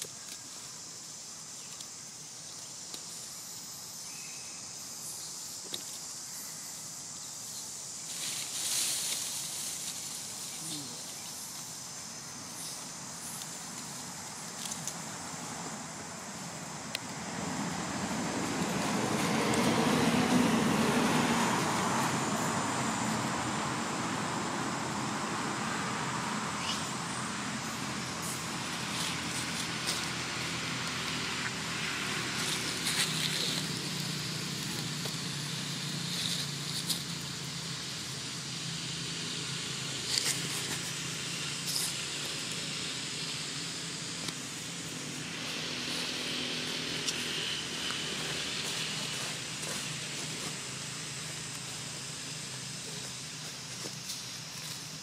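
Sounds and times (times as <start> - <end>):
outdoor background rumble: 0.0 - 55.0
dry leaves crackling: 7.9 - 22.5, 27.7 - 55.0.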